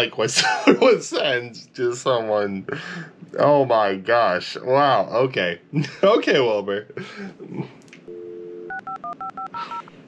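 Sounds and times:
telephone dial tone: 8.1 - 9.9
touch-tone keypad beeps: 8.1 - 9.9.

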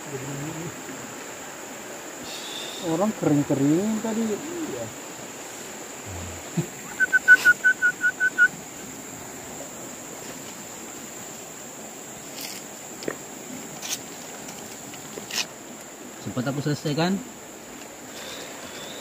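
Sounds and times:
high insect drone: 0.0 - 19.0
river rushing: 0.0 - 19.0
bird calling short notes: 6.8 - 8.6.

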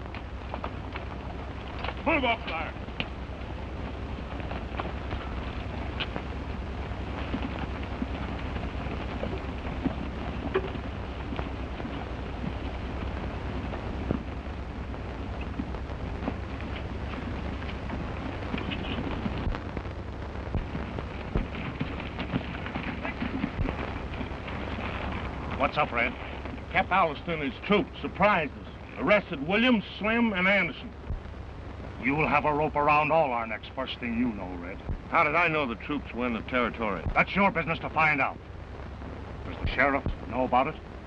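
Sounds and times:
horses galloping on dry ground: 0.0 - 31.4, 32.0 - 41.0
steady hiss and low hum: 0.0 - 41.0.

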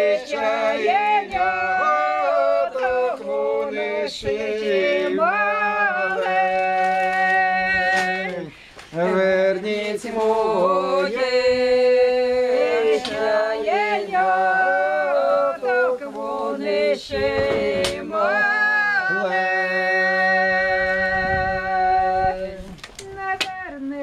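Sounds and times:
group singing unaccompanied in harmony: 0.0 - 24.0.

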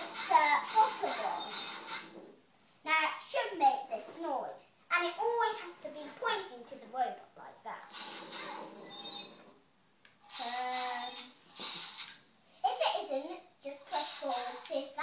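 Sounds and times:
girl talking and vocalising: 10.3 - 11.3, 12.6 - 15.0.

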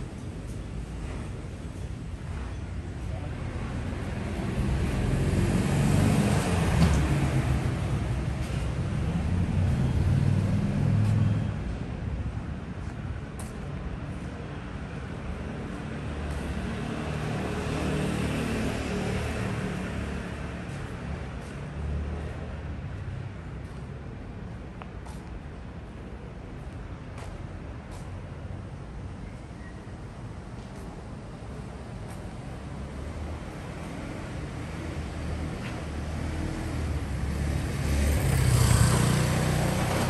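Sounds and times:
vehicles passing close by: 0.0 - 40.0.

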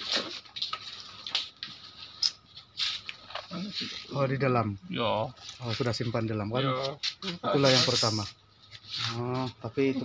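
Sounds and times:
objects scraping and rustling: 0.0 - 4.6, 5.2 - 10.0.

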